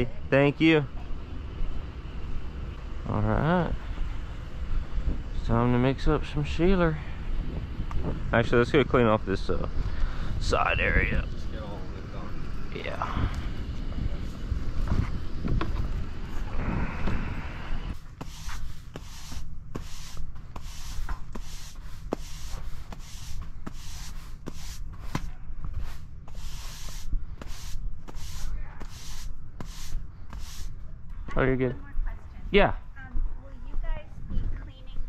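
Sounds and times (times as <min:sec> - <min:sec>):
push broom sweeping sand: 0:17.9 - 0:30.8.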